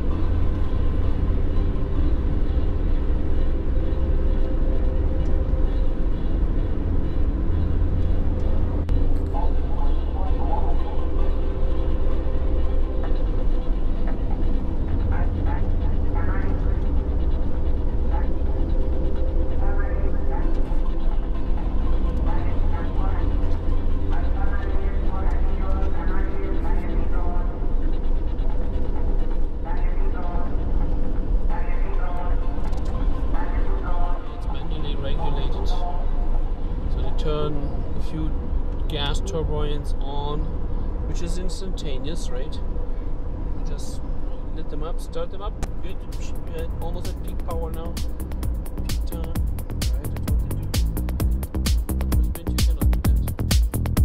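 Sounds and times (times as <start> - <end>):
faint voices talking: 0.0 - 53.6
vehicle engine and tyres rumbling: 0.0 - 54.0.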